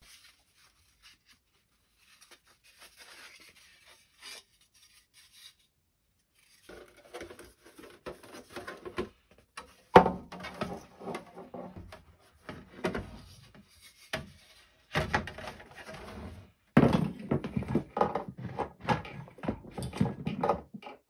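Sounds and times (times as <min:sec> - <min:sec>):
plastic parts scraping and tapping: 0:06.6 - 0:21.0.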